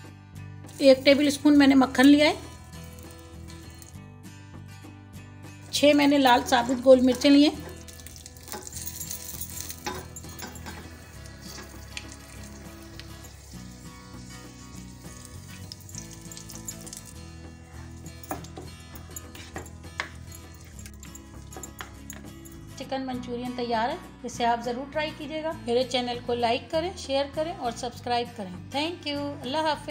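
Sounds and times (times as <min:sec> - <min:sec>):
soft background music with bass: 0:00.0 - 0:29.9
chillies sizzling in butter: 0:00.7 - 0:03.9, 0:05.6 - 0:22.0
spoon stirring gravy: 0:05.8 - 0:22.4.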